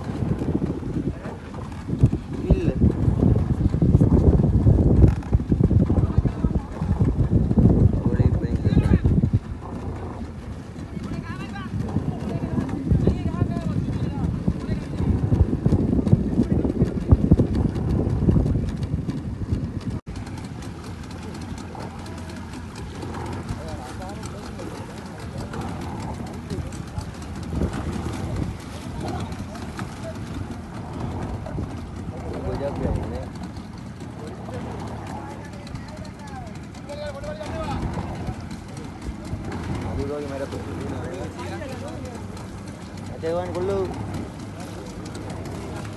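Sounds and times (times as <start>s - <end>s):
low thumping on boat: 0.0s - 45.9s
outboard motor rumble: 0.0s - 45.9s.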